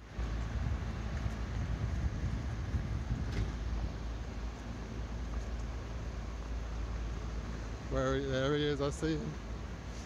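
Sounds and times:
wind rumbling on microphone: 0.0 - 7.9
road traffic: 0.0 - 10.0.

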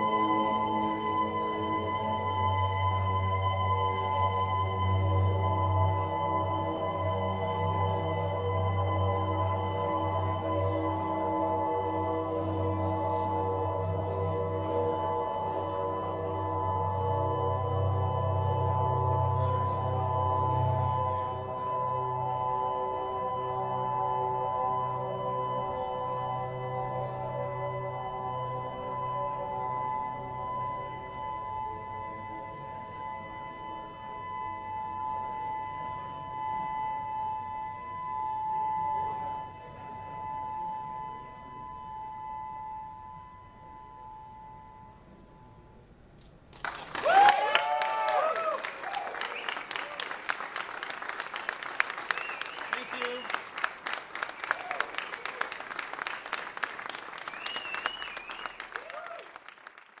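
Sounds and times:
cello drone: 0.0 - 45.9
audience applause and cheers: 46.6 - 60.0.

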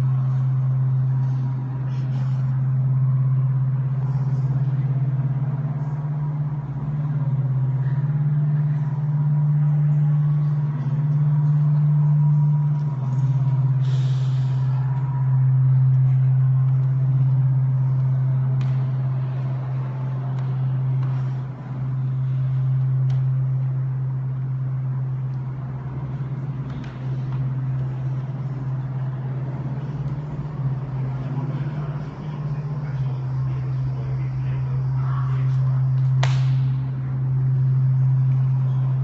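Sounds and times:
loud steady low drone: 0.0 - 39.0.

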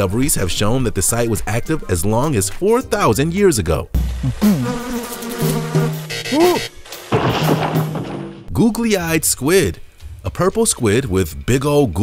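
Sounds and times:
cartoon buzzing: 4.0 - 6.8.

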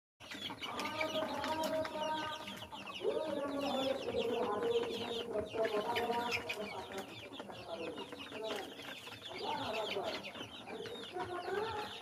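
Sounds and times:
chicks peeping: 0.2 - 12.0.

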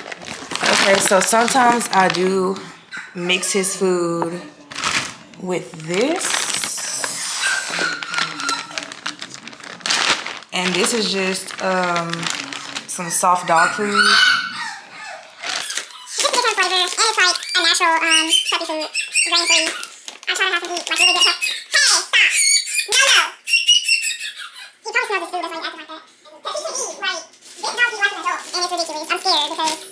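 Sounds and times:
plastic bag crinkling: 0.0 - 22.1, 26.7 - 29.9
puppy whining and crying: 6.8 - 8.9, 13.1 - 16.2.

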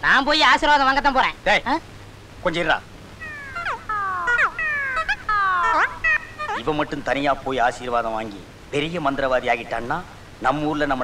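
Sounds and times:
comic falling whining tones: 3.2 - 7.0
voiced exclamation: 3.2 - 7.8.

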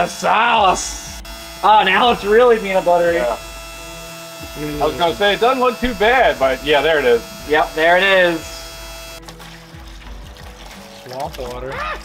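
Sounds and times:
background music: 0.0 - 12.0
water pouring from hose into bucket: 9.2 - 12.0.

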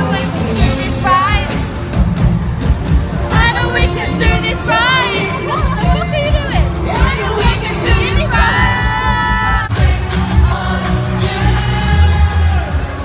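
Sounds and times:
amplified band with heavy bass: 0.0 - 13.0
fans singing along: 0.0 - 13.0.

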